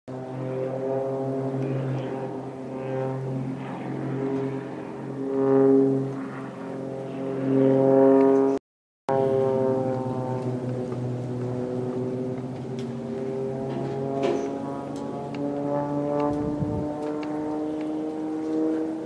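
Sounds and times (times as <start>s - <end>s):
propeller plane engine droning: 0.1s - 19.0s.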